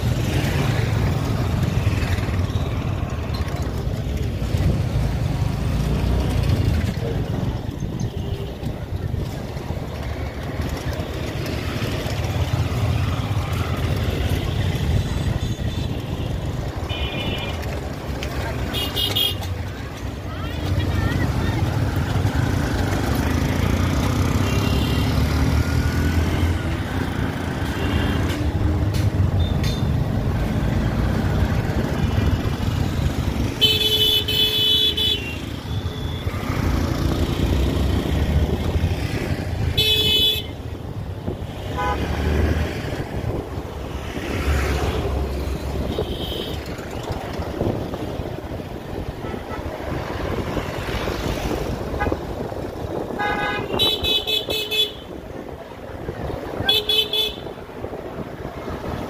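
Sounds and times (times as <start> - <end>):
engine and road rumble: 0.0 - 59.0
vehicle horns tooting: 33.6 - 36.2, 39.7 - 40.6, 41.7 - 42.1, 53.1 - 55.2, 56.6 - 57.6.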